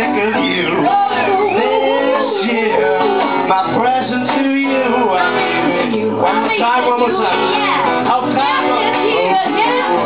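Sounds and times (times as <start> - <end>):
amplified guitar: 0.0 - 10.0
live band music: 0.0 - 10.0
person singing: 0.0 - 10.0.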